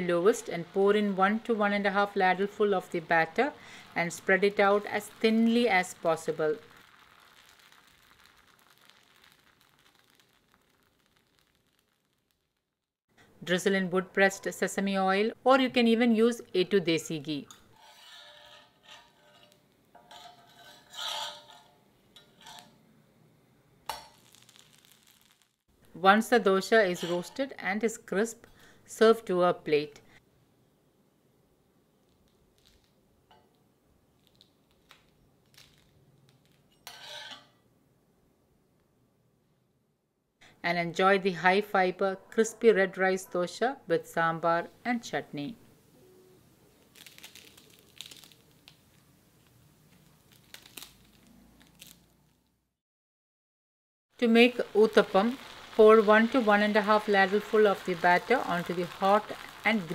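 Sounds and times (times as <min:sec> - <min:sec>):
batter sizzling on a griddle: 0:00.0 - 0:12.8, 0:23.9 - 0:27.5, 0:46.8 - 0:52.0, 0:54.2 - 0:59.9
spatula scraping on iron pan: 0:17.7 - 0:22.8, 0:26.8 - 0:27.6, 0:36.8 - 0:37.6.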